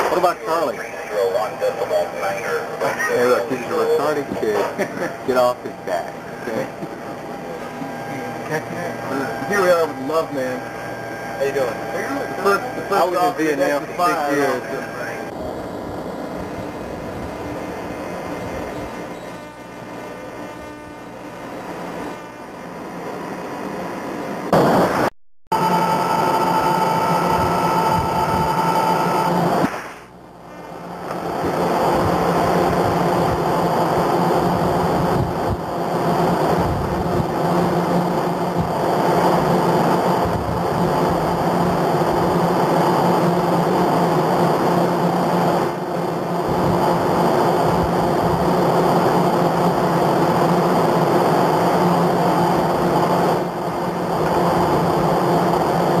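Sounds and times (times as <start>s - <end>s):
low machinery hum: 0.0s - 56.0s.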